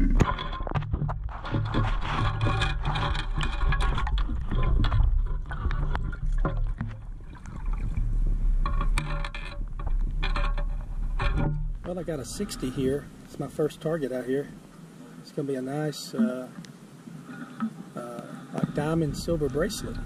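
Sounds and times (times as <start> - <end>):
gravel rattling against wire mesh: 0.0 - 14.6
water sloshing: 0.0 - 20.0.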